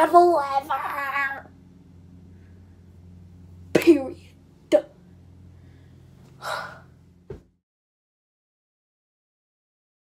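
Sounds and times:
low thump: 7.3s - 7.5s.

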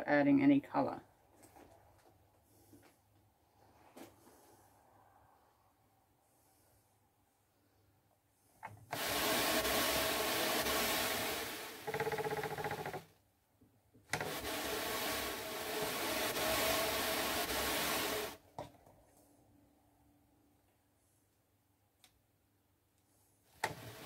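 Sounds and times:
drum carder rasping whirr: 8.9s - 13.0s, 14.1s - 18.4s.

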